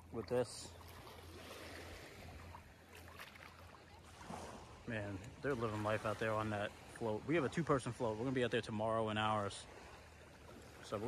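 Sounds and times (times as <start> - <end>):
water sloshing around wading feet: 0.0 - 11.0.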